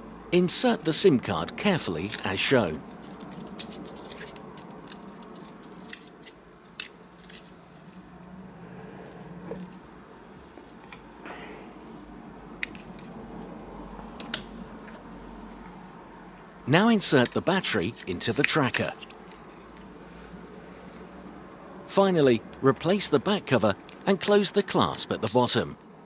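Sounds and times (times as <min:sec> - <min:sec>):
faint steady hum: 0:00.0 - 0:26.0.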